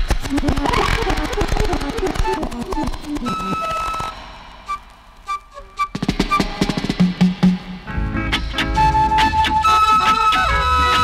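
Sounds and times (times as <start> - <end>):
fast run of drum hits: 6.0 - 8.1.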